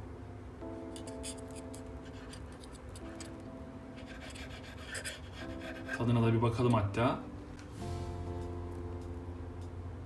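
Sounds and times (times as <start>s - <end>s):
soft background music: 0.0s - 10.0s
knife sawing through mushroom: 4.0s - 6.2s.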